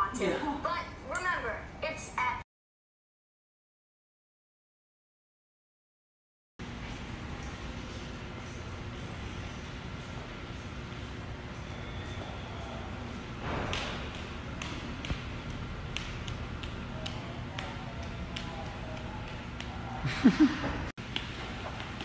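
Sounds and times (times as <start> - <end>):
low room hum: 6.6 - 22.0.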